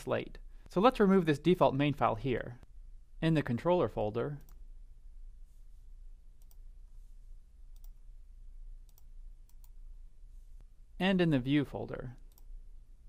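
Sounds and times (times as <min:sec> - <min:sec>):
faint low hum: 0:00.0 - 0:13.0
computer mouse clicks: 0:06.4 - 0:06.6, 0:07.7 - 0:08.0, 0:08.8 - 0:09.8, 0:12.2 - 0:12.5.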